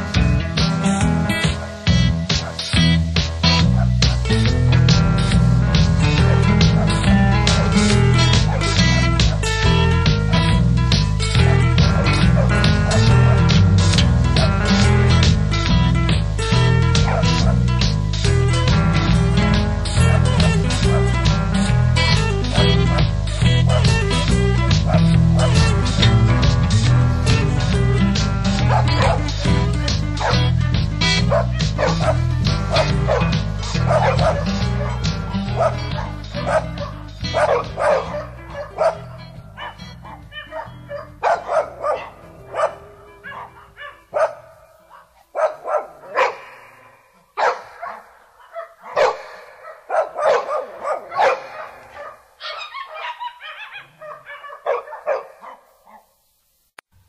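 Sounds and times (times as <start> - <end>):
song music: 0.0 - 44.6
dog barks and yips: 6.2 - 9.5, 17.1 - 17.6, 23.7 - 24.0, 24.9 - 25.7, 28.7 - 29.3, 30.2 - 30.4, 31.3 - 56.1.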